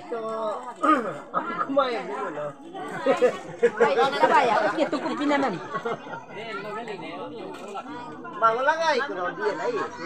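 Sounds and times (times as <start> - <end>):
people chatting: 0.0 - 10.0.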